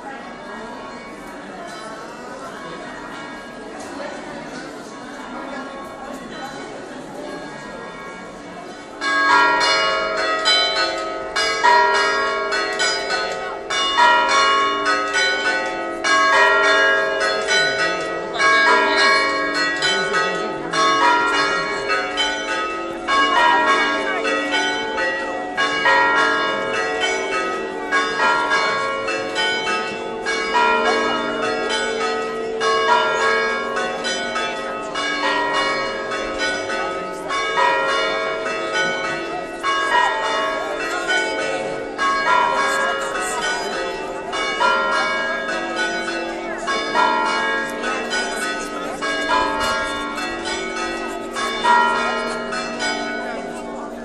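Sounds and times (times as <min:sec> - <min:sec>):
church bells pealing: 0:00.0 - 0:54.0.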